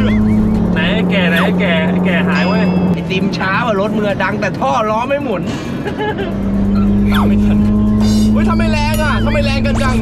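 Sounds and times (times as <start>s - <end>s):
steady engine drone: 0.0s - 10.0s.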